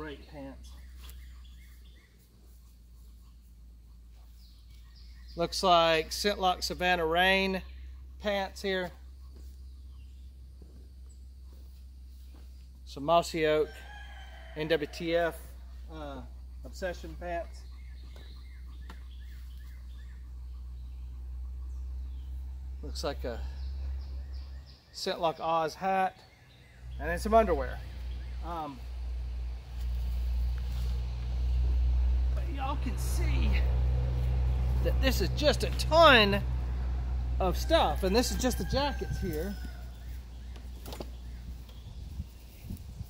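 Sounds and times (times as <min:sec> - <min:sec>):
birds chirping: 0:00.0 - 0:43.0
steady low rumble: 0:26.7 - 0:43.0.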